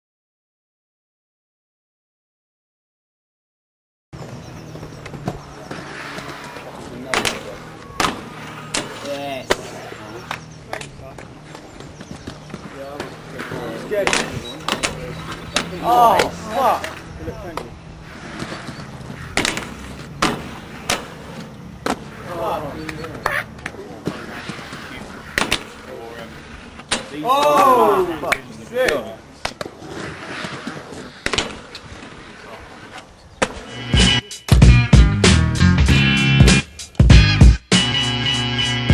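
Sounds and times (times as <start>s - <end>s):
faint outdoor background noise: 4.2s - 38.9s
inline skates clacking on metal rail: 4.3s - 33.7s
man shouting: 15.8s - 16.9s, 22.2s - 22.8s, 27.2s - 29.0s.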